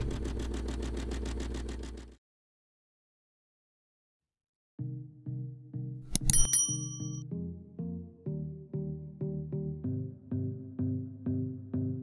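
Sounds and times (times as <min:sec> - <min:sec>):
low pulsing hum: 0:00.0 - 0:02.1.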